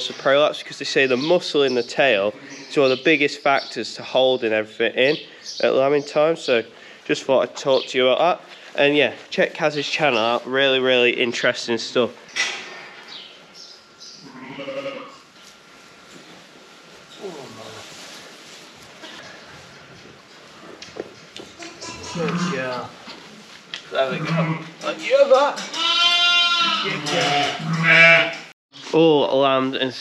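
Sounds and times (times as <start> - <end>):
sheep bleating: 14.2 - 15.2, 21.6 - 22.7, 24.0 - 24.7, 25.7 - 28.5.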